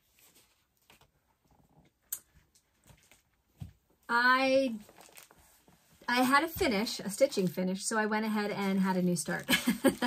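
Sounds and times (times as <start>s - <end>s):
soft rustling: 0.0s - 7.6s.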